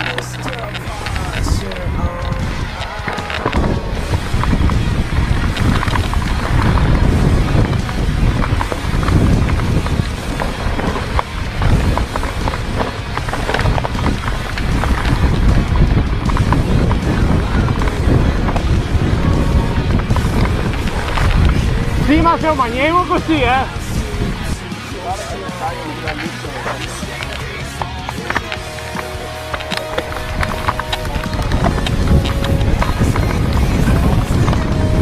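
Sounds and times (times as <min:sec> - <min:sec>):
mountain bike rattling and knocking: 0:00.0 - 0:35.0
wind buffeting microphone: 0:00.0 - 0:35.0.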